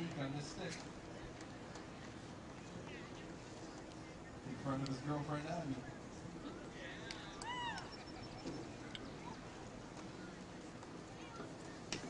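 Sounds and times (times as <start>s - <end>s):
low outdoor background: 0.0s - 12.0s.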